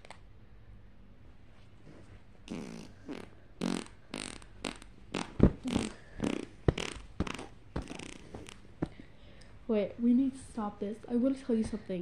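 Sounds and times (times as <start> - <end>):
child making mouth sound effects: 2.5 - 8.6.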